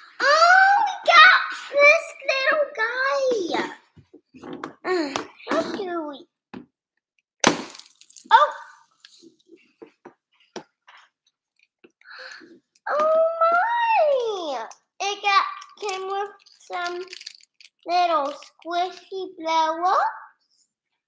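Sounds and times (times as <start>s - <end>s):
plastic and foil crinkling: 15.5s - 19.0s.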